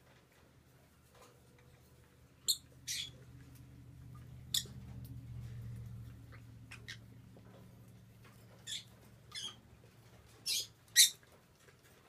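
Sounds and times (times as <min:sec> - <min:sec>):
lovebird squeaky chirps: 0:02.4 - 0:03.2, 0:08.6 - 0:09.6, 0:10.4 - 0:11.2.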